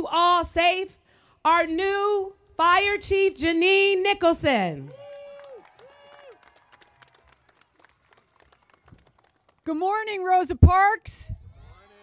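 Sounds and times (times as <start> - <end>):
scattered faint clapping: 4.9 - 10.1.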